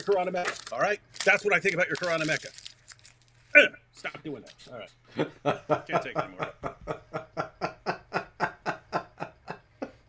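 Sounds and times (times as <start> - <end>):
man laughing hard: 5.2 - 10.0.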